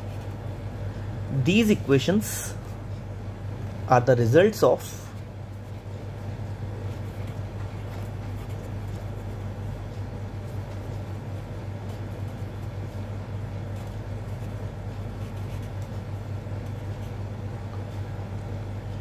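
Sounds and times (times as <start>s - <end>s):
steady low hum: 0.0s - 19.0s
marker writing on paper: 6.8s - 13.0s, 13.7s - 17.2s.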